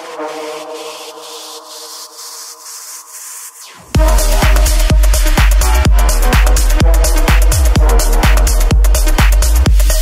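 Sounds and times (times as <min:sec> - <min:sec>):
high pulse: 0:00.0 - 0:09.6
sustained synth chord: 0:03.8 - 0:09.1
techno kick and bass: 0:03.9 - 0:10.0.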